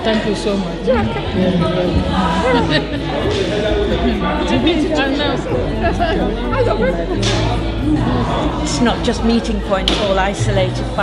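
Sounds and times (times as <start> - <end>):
background music: 0.0 - 11.0
people chatting: 0.0 - 11.0.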